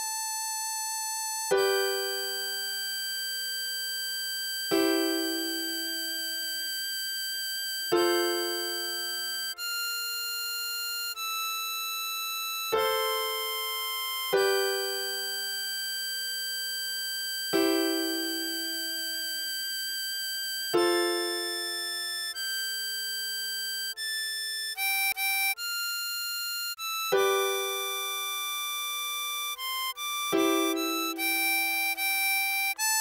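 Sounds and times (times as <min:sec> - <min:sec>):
electronic held melody note: 0:00.0 - 0:33.0
sustained keyboard chord: 0:01.5 - 0:10.0, 0:12.7 - 0:23.2, 0:27.1 - 0:33.0
synthesized melody notes: 0:04.7 - 0:06.9, 0:07.8 - 0:09.7, 0:20.7 - 0:22.4, 0:29.5 - 0:33.0.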